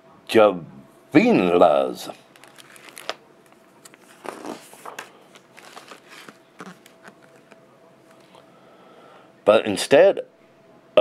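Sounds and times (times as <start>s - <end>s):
book pages turning: 2.3s - 8.4s.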